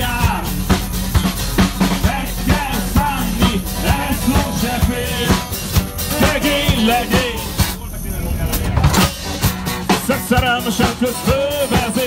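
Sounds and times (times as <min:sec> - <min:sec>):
live band playing: 0:00.0 - 0:12.0
tram rumbling: 0:00.0 - 0:12.0
person singing: 0:02.0 - 0:07.6.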